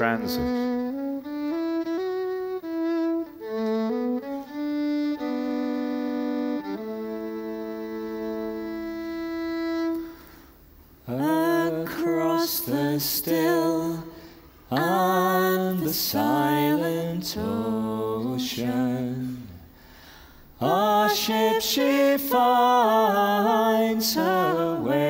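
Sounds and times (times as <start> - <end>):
slow fiddle melody: 0.0 - 10.6
man and woman singing: 11.1 - 19.7, 20.6 - 25.0.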